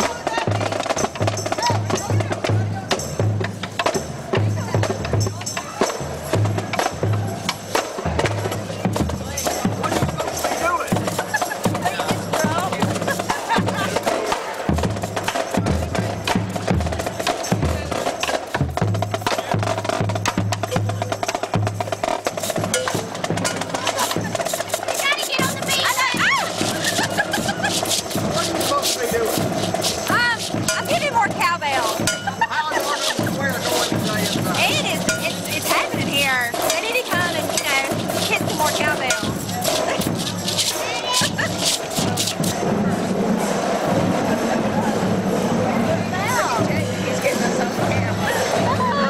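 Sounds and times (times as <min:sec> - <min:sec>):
rapid snare drum strokes: 0:00.0 - 0:49.0.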